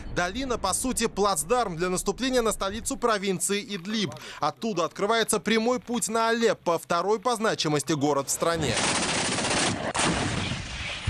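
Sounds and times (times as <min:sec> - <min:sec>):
automatic gunfire: 0:08.6 - 0:11.0.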